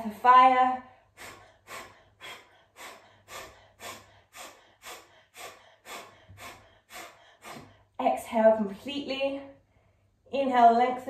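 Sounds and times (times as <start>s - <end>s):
rapid forceful nasal exhales: 1.1s - 7.9s.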